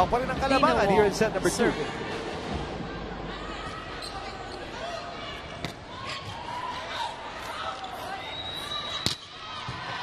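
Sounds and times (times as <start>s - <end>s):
indoor arena crowd noise: 0.0s - 10.0s.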